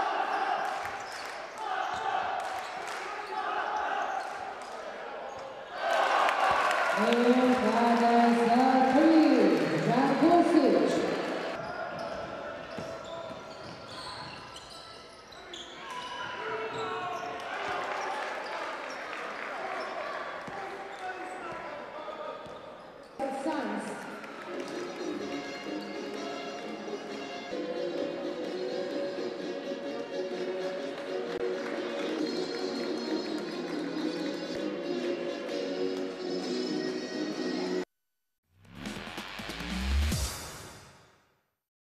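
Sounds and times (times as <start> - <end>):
crowd noise: 0.0 - 37.8
music: 24.2 - 37.9, 38.6 - 41.4.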